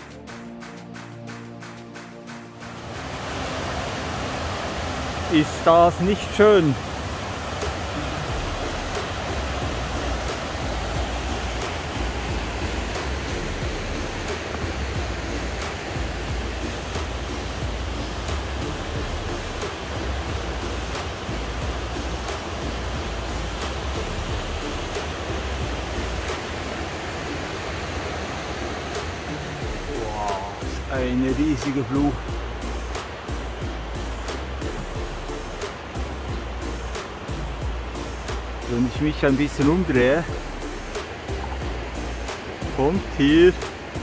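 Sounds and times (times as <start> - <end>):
water rushing over rocks: 1.3 - 44.0.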